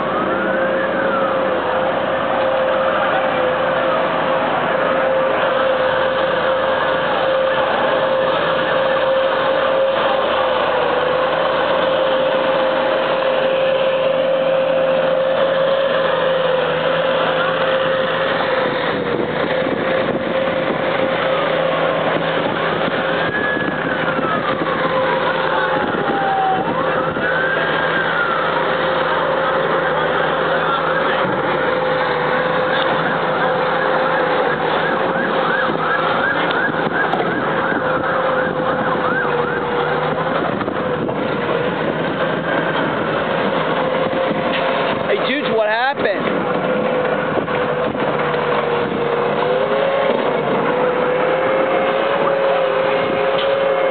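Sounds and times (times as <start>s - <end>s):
police sirens wailing: 0.0s - 53.9s
street noise: 0.0s - 53.9s.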